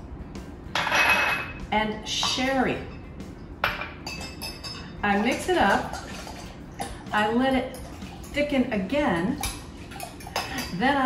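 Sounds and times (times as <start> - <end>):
glass clinking against glass jug: 0.8 - 1.6, 3.6 - 4.9, 9.4 - 10.8
utensil stirring: 2.1 - 11.0.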